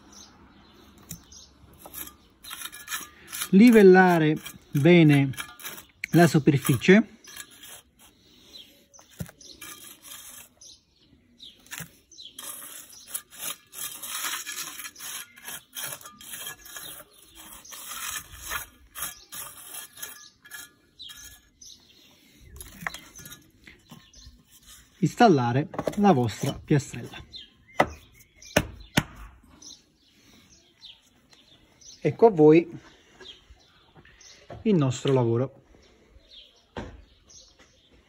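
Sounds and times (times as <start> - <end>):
trowel scraping soil: 0.1 - 28.5.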